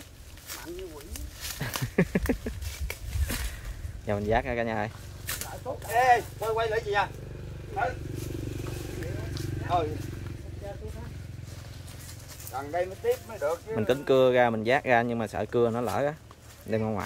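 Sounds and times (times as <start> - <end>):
small engine humming: 5.1 - 14.0
men calling out: 5.5 - 11.4, 12.4 - 14.8.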